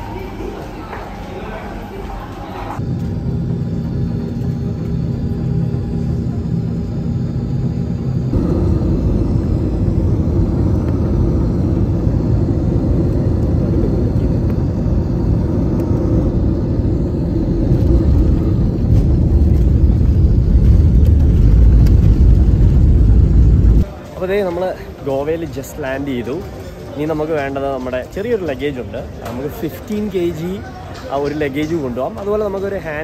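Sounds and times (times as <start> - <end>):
jet engines and airflow rumble: 0.0 - 33.0.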